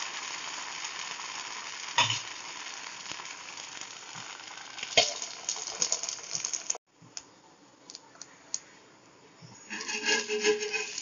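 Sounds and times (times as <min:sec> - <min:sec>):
metal spatula scraping griddle: 0:09.6 - 0:11.0.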